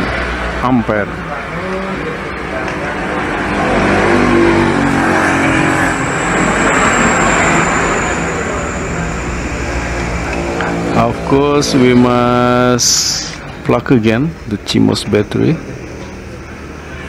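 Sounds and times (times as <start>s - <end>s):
vehicle engine running: 0.0s - 14.6s.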